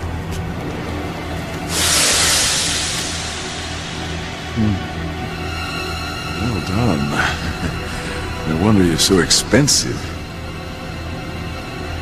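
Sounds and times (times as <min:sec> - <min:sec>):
low droning music: 0:00.0 - 0:12.0.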